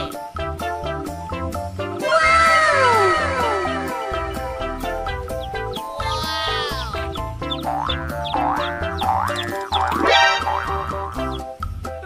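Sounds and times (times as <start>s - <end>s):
upbeat children's music: 0.0s - 12.0s
cartoon falling glide: 2.0s - 4.6s, 9.4s - 11.3s
cartoon rising boing glides: 7.6s - 11.3s.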